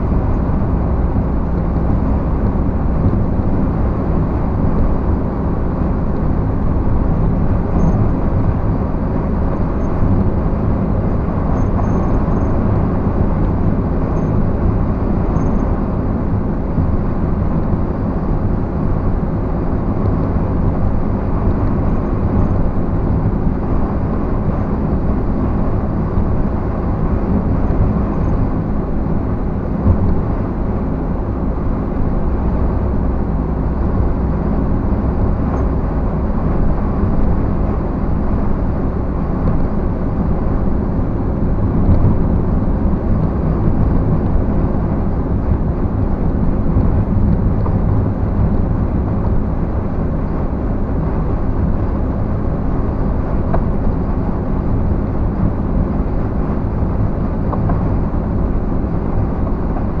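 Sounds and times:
engine humming at cruising speed: 0.0s - 60.0s.

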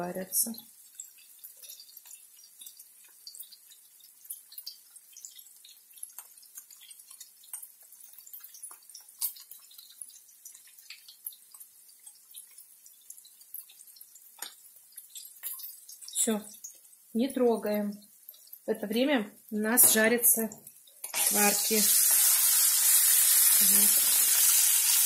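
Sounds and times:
fat frying in a pan: 0.0s - 25.0s
water boiling in a pot: 0.0s - 25.0s.

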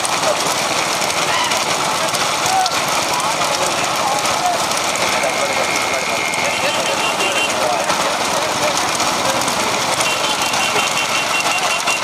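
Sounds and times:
vehicle engines running: 0.0s - 12.0s
people shouting: 1.1s - 8.0s, 9.9s - 12.0s.

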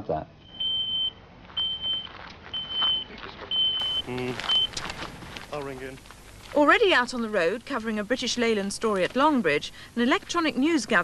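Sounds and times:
pager beeping: 0.5s - 4.7s.

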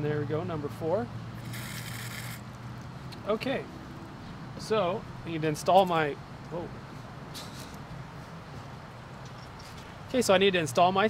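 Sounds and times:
water hissing out of valve: 1.4s - 2.4s.

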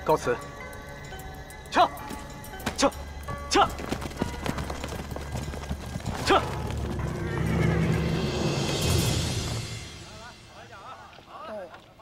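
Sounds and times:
music: 0.0s - 11.1s
horse hooves clopping on hard ground: 2.0s - 9.1s.

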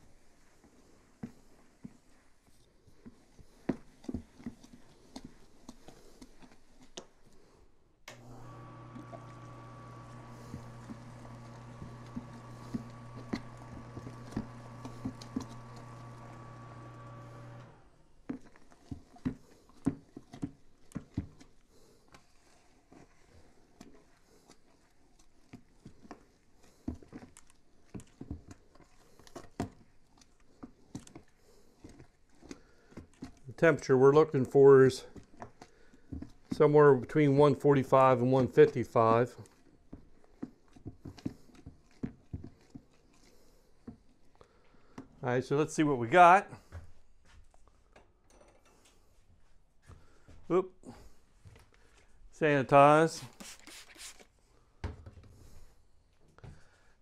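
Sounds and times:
paddle stirring thick mash: 0.0s - 7.7s, 8.3s - 46.7s, 52.5s - 54.5s
small electric motor humming: 8.1s - 17.9s.

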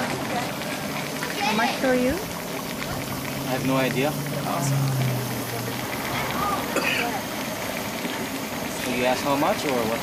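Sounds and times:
chicken sizzling in a wok: 0.0s - 10.0s.

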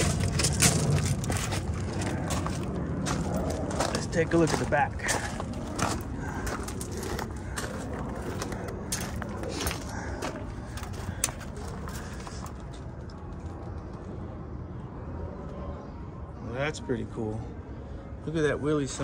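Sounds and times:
footsteps crunching on gravel: 0.0s - 12.8s
low background rumble: 0.0s - 16.3s.

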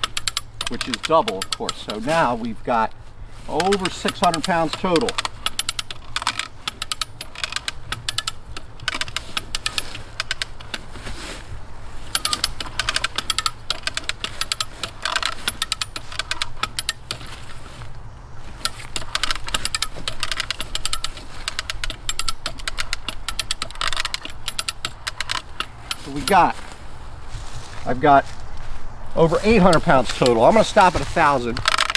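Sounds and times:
ratcheting hand winch clicking: 0.0s - 2.6s, 3.4s - 11.3s, 12.0s - 26.6s, 29.4s - 31.9s.

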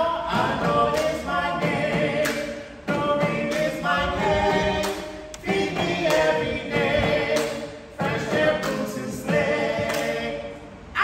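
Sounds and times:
group singing together: 0.0s - 11.0s.

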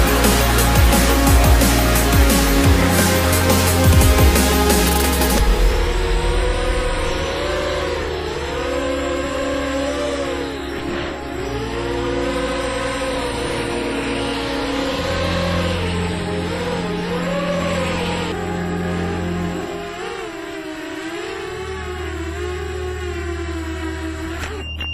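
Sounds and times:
electronic music with bass line: 0.0s - 24.6s
quadcopter motors whining: 0.0s - 24.9s.

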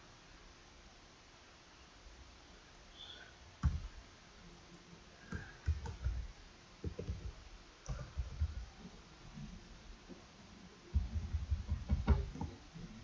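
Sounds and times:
computer keyboard typing: 5.3s - 6.2s.

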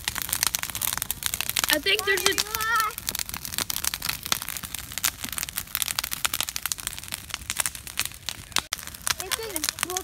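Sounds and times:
bonfire crackling and popping: 0.0s - 10.0s.

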